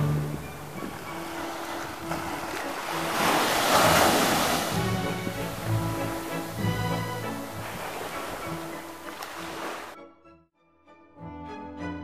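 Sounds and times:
small waves breaking on a beach: 0.0s - 10.0s
instrumental background music: 0.0s - 12.0s.

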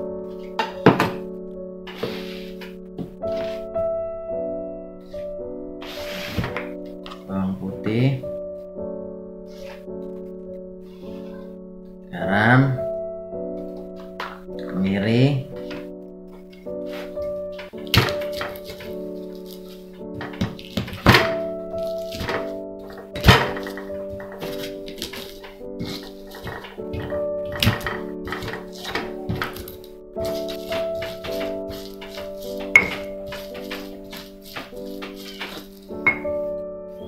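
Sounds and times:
background music with held notes: 0.0s - 37.0s.

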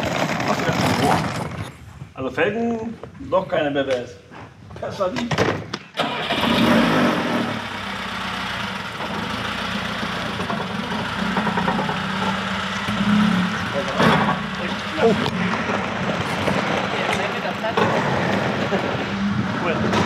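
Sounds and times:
car engine starting and running: 6.0s - 20.0s.

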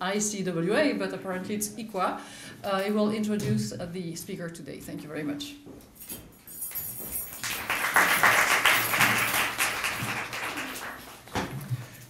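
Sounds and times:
audience applauding: 7.3s - 11.3s.

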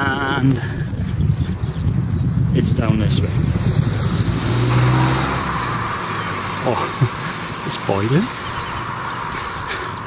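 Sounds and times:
wind rumble on microphone: 0.0s - 7.2s
vehicle passing: 3.1s - 10.0s.

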